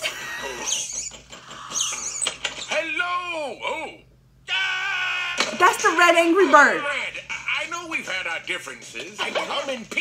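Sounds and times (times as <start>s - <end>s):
squeaky cartoon chirps: 0.2s - 2.7s.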